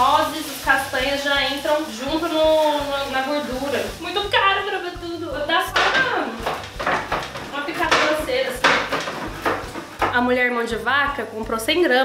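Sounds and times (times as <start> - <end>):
knife chopping on wooden board: 5.7 - 10.2.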